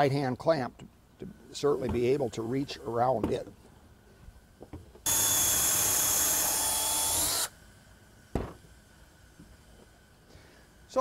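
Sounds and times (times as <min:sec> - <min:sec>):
cordless drill boring into board: 0:05.0 - 0:07.5.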